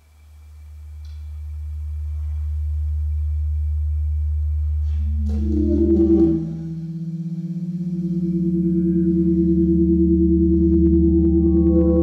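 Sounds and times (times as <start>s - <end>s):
deep electronic sine tone: 0.0s - 12.0s.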